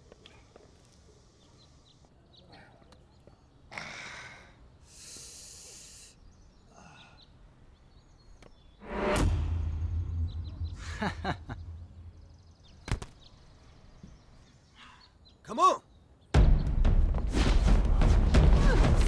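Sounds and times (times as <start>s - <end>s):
swish: 8.8s - 12.2s
deep boom with rumble: 8.9s - 12.6s.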